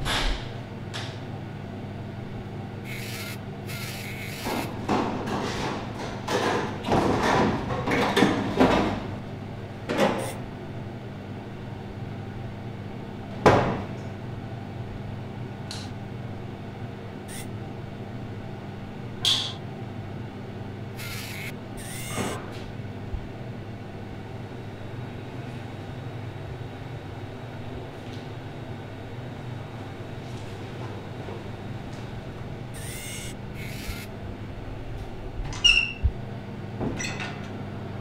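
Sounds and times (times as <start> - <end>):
low electrical hum: 0.0 - 38.0.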